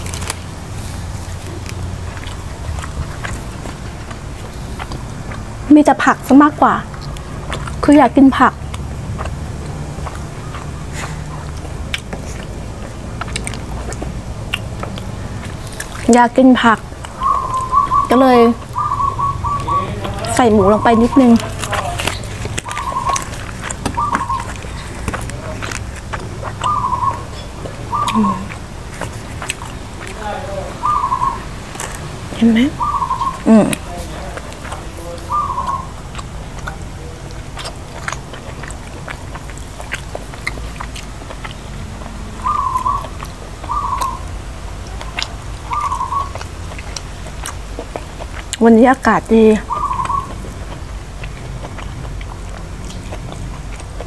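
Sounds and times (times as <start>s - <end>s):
chewing with mouth clicks: 0.0s - 54.0s
bird whistled call: 17.2s - 19.9s, 22.7s - 23.3s, 24.0s - 24.5s, 26.6s - 28.5s, 30.8s - 31.4s, 32.8s - 33.4s, 35.3s - 35.9s, 42.4s - 44.2s, 45.7s - 46.4s, 49.7s - 50.4s
bird calling short notes: 17.2s - 20.0s.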